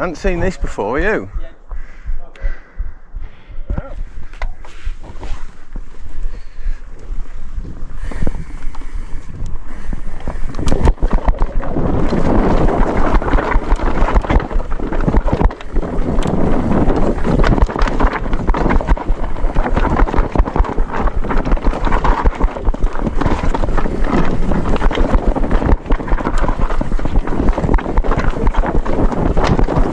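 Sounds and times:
wind rushing over microphone: 0.0s - 29.9s
bike knocking and rattling: 4.0s - 29.9s
tyres rolling over dirt: 10.0s - 29.9s.

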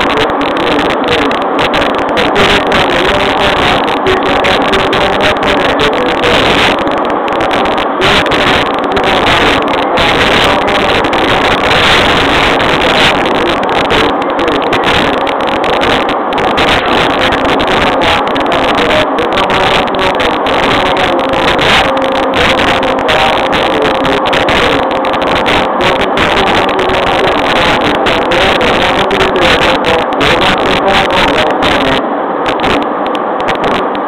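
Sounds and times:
traction motor hum: 0.0s - 34.0s.

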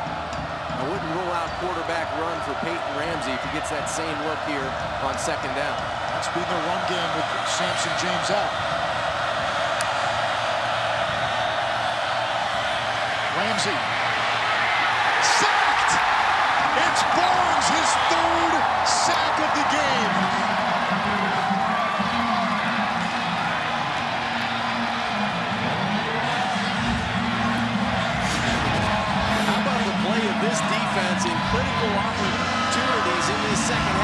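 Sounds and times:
music: 0.0s - 15.4s, 16.0s - 34.0s
stadium crowd cheering: 0.0s - 34.0s.

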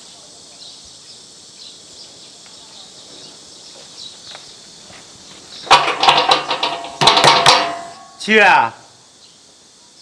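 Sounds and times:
metal gate rattling: 5.6s - 8.3s.

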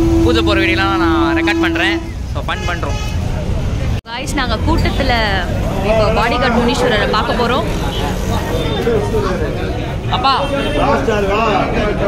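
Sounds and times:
long steady tone: 0.0s - 2.2s
street traffic rumble: 0.0s - 12.0s
many voices: 3.2s - 12.0s.

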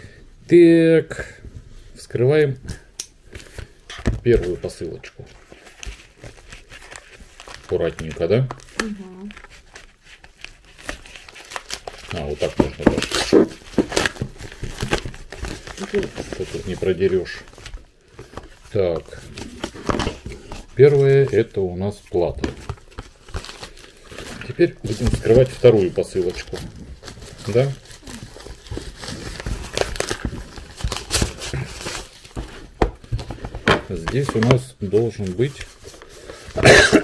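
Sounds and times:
plastic crinkling: 5.5s - 36.8s
plastic mailer bag crinkling: 22.8s - 32.2s.

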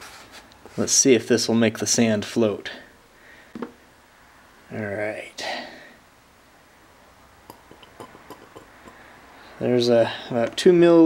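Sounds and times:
glassware light clicks: 7.5s - 9.0s.

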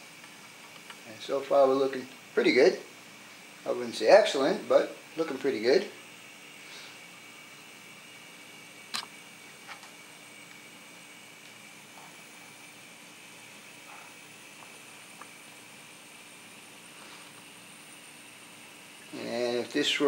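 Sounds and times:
model train whine and hiss: 0.0s - 20.0s.

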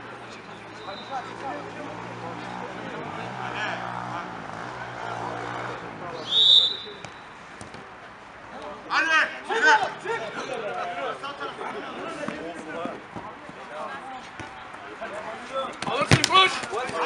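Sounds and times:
players' voices: 0.0s - 17.0s
referee's whistle blast: 6.2s - 7.1s.

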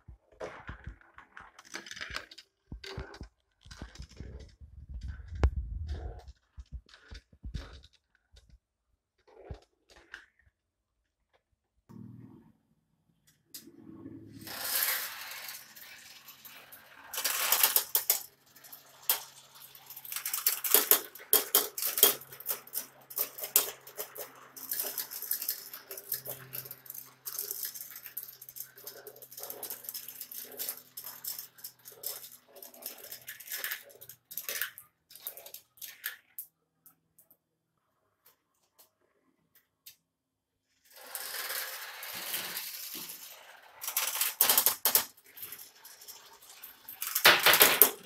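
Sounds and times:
marbles rattling down plastic run: 14.4s - 36.4s, 40.9s - 48.0s.

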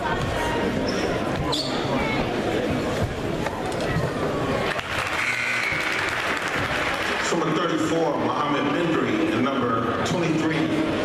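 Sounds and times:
crowd clapping: 4.7s - 7.6s.

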